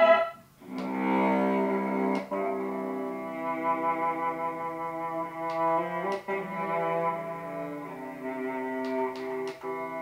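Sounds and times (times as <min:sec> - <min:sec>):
guitar music through speakers: 0:00.6 - 0:10.0.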